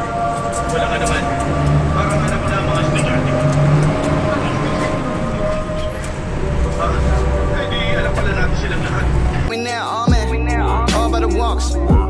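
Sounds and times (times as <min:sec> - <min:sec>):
bus engine drone: 0:00.0 - 0:09.5.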